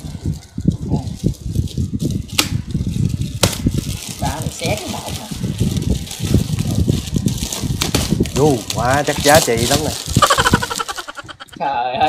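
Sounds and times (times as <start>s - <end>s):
wrapping paper rustling: 0.0s - 11.6s.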